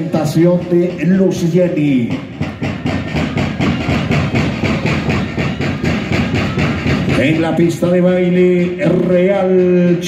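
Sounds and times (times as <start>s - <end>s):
fast drum beat: 0.0s - 10.0s
festive band music: 0.0s - 10.0s.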